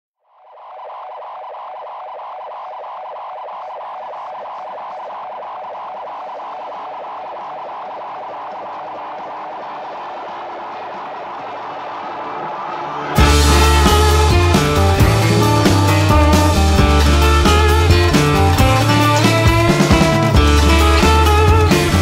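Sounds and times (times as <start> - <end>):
pulsing effects-processed guitar tone: 0.2 - 22.0.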